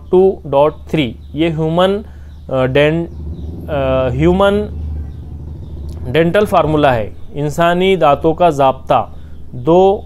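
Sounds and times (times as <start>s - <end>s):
steady low rumble: 3.0s - 9.7s
man speaking: 6.0s - 9.1s.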